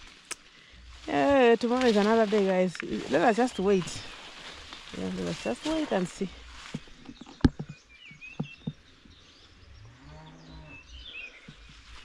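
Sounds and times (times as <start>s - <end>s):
small birds chirping: 0.0s - 12.0s
cow mooing: 9.9s - 10.9s.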